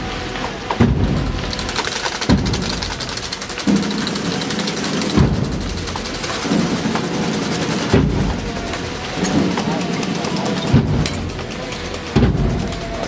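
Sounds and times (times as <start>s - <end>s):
bass drum booming: 0.8s - 1.5s.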